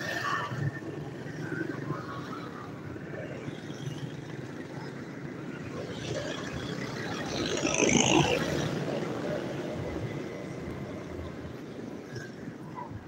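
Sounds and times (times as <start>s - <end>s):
city road traffic: 0.0s - 13.0s.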